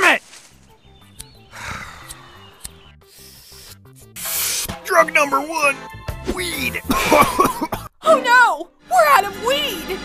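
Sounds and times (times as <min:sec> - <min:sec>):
quiet cartoon music: 0:00.0 - 0:10.0.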